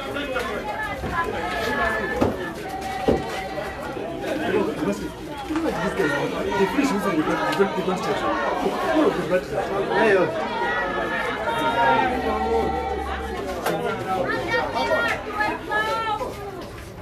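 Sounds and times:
overlapping chatter: 0.0s - 17.0s.

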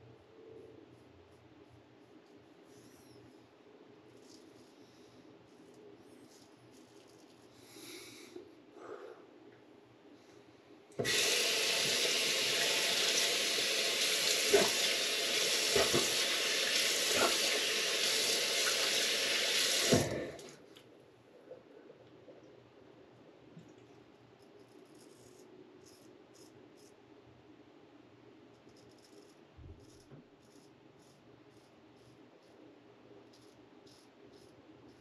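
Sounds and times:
sink tap running: 11.0s - 20.5s.

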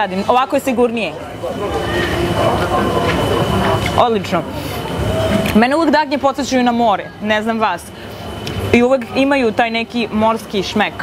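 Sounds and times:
faint voices: 0.6s - 11.0s.

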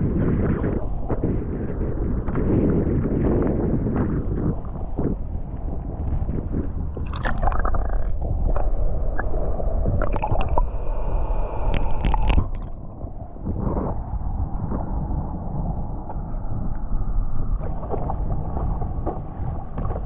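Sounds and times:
underwater gurgling: 0.3s - 14.8s, 17.5s - 20.0s
bubbles popping: 7.0s - 10.8s, 11.7s - 12.8s
lake water sloshing: 7.1s - 8.7s.

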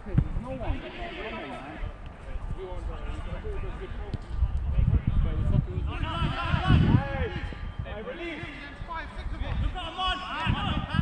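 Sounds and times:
footballers shouting: 0.5s - 2.0s, 5.8s - 11.0s.

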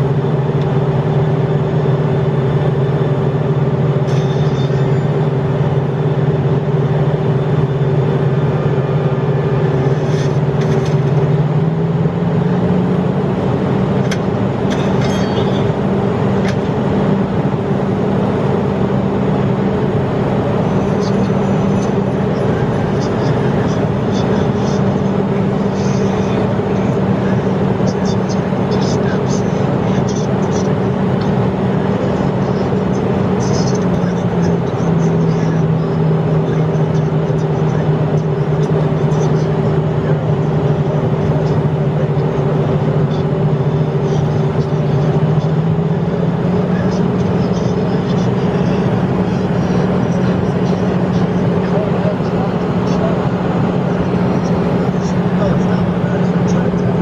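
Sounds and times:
jet cabin roar: 0.0s - 57.0s
steady engine hum: 0.0s - 57.0s.

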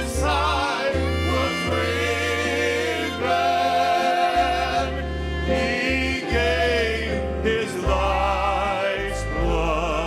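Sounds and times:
fiddle playing sliding fill: 0.0s - 7.5s
singers holding notes: 0.0s - 10.0s.

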